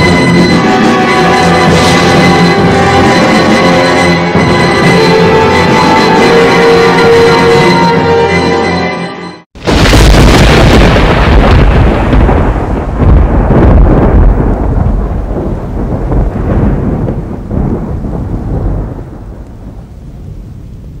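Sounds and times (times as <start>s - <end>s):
thunder crash rumbling: 0.0s - 7.5s, 9.6s - 21.0s.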